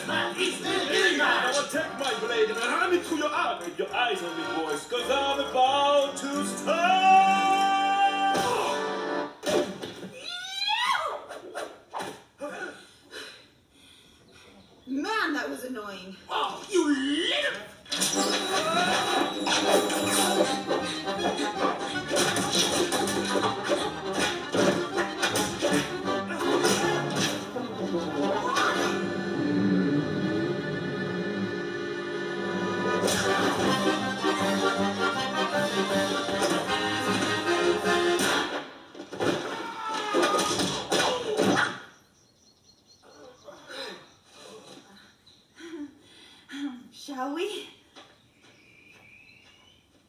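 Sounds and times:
accordion-led film music: 0:00.0 - 0:07.6, 0:08.6 - 0:09.4, 0:18.1 - 0:38.9.

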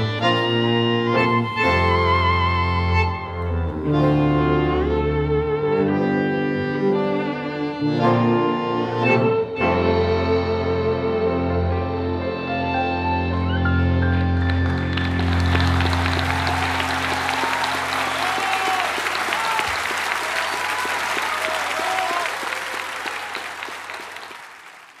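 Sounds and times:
tango ensemble held chord: 0:00.0 - 0:19.3
audience applause: 0:14.0 - 0:25.0.

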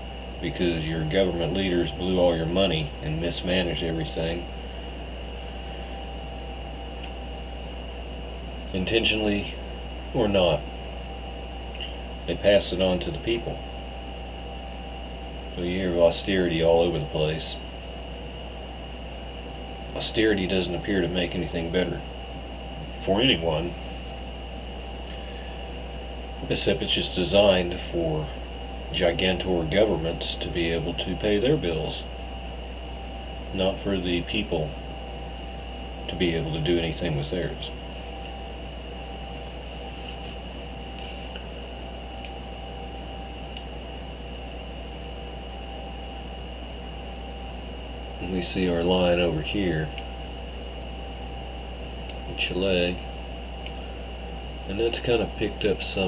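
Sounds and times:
faint high whine: 0:00.0 - 0:56.0
low hum: 0:00.0 - 0:56.0.

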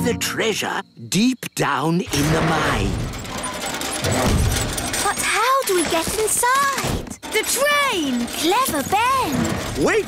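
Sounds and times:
mine cart rattling along rails: 0:01.9 - 0:10.0.

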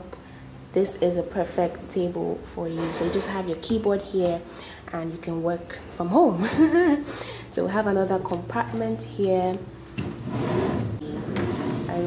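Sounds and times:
drawer sliding open: 0:02.7 - 0:03.5, 0:10.0 - 0:12.0.

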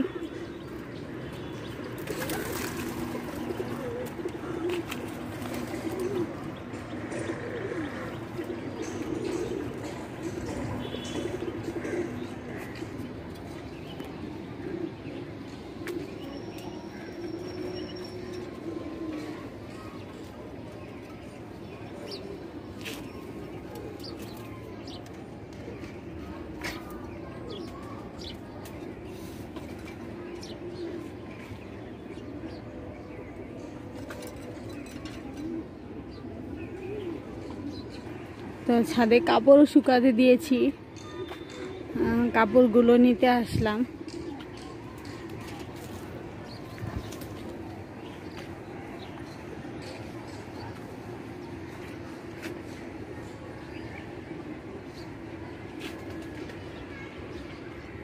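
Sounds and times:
pigeons cooing: 0:01.7 - 0:21.3, 0:28.9 - 0:38.3.

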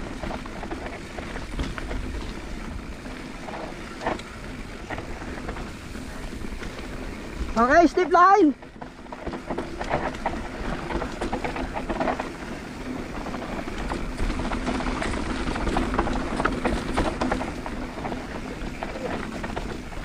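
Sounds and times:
bike frame and chain clattering: 0:00.0 - 0:20.0
bike tyres rolling on dirt: 0:00.0 - 0:20.0.

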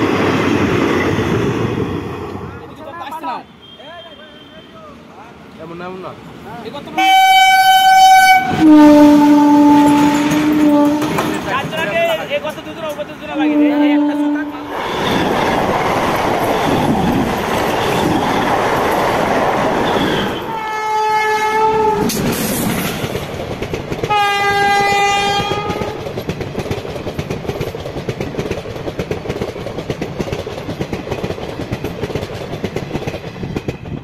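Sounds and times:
train horn blasts: 0:07.0 - 0:11.4, 0:13.4 - 0:14.8, 0:19.8 - 0:22.1, 0:24.1 - 0:26.0
train wheels clattering on track: 0:07.1 - 0:13.6, 0:14.2 - 0:20.6, 0:21.8 - 0:34.0.

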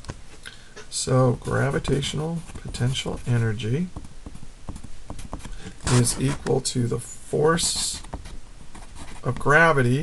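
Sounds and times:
pencil writing on paper: 0:04.0 - 0:06.4.

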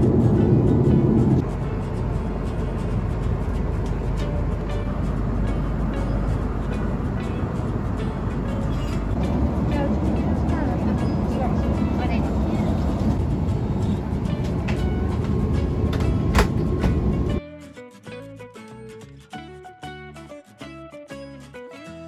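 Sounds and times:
jet airliner cabin roar: 0:00.0 - 0:17.4.

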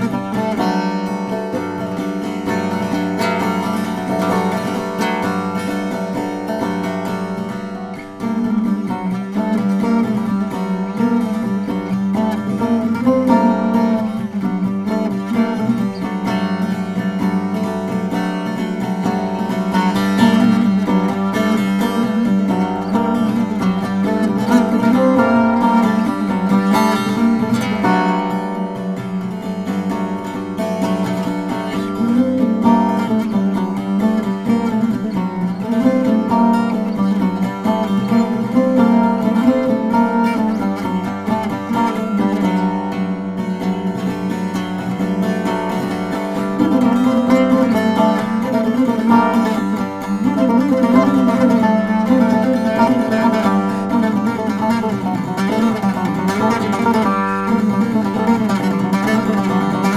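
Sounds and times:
lute picked with a plectrum: 0:00.0 - 0:59.9.

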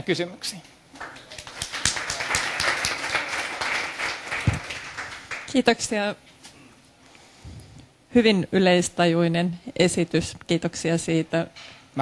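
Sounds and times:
audience applauding: 0:01.0 - 0:05.6.

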